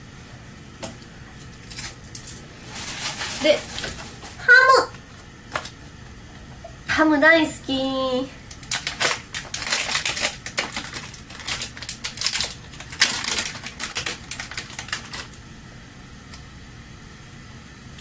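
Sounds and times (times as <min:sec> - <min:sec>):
plastic film crinkling: 0:01.6 - 0:04.4, 0:08.5 - 0:15.4.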